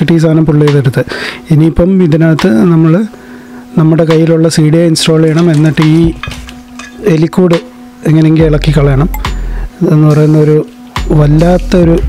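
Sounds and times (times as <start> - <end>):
man's voice: 0.0 - 3.1, 3.8 - 6.3, 7.0 - 12.0
steady low hum: 0.0 - 12.0.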